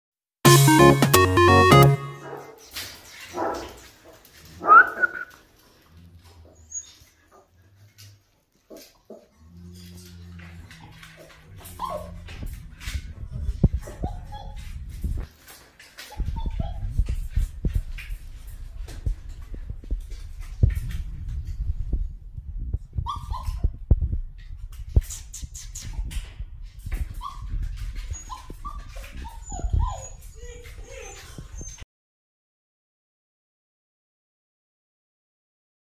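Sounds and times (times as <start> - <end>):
puppy whimpering: 6.2 - 7.5, 10.8 - 14.8, 16.0 - 17.2, 23.0 - 23.8, 27.1 - 31.8
puppy crying: 11.6 - 12.3, 28.1 - 31.8.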